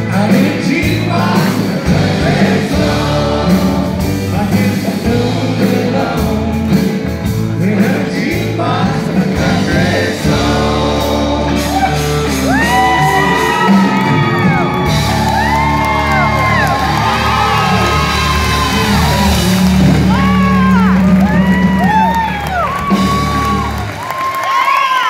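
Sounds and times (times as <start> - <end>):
live country band: 0.0 - 25.0
audience whooping and cheering: 11.5 - 25.0.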